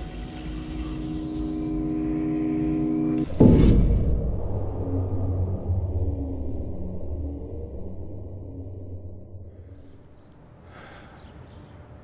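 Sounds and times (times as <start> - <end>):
low rumble: 0.0 - 10.5
sustained drone of held tones: 0.0 - 10.5.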